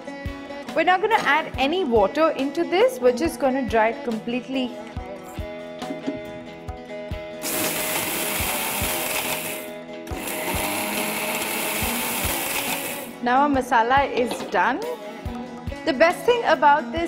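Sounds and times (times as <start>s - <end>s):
background music with steady beat: 0.0s - 17.0s
mixer grinder grinding spices: 7.4s - 13.2s.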